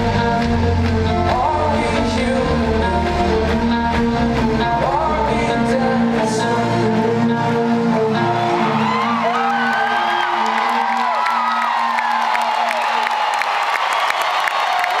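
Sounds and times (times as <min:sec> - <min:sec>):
scattered clapping: 0:00.1 - 0:01.7, 0:09.5 - 0:15.0
crowd cheering: 0:08.0 - 0:15.0
high shouts: 0:08.2 - 0:15.0.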